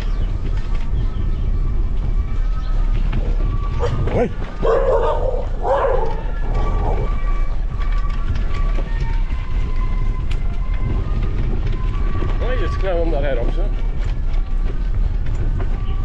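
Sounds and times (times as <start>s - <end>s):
bicycle tyres on dirt road: 0.0s - 16.0s
wind: 0.0s - 16.0s
dog barking: 4.6s - 6.3s.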